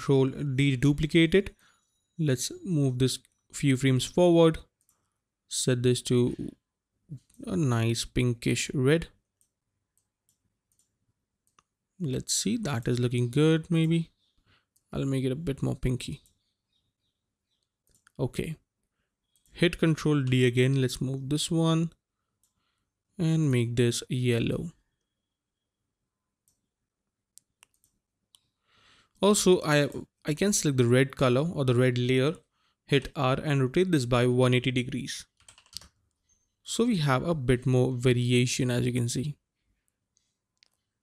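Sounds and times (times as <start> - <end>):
computer mouse clicks: 4.7 - 5.1, 9.4 - 11.8, 16.1 - 18.2, 19.2 - 19.6, 26.4 - 26.7, 27.3 - 28.6, 35.4 - 36.3, 39.9 - 40.9.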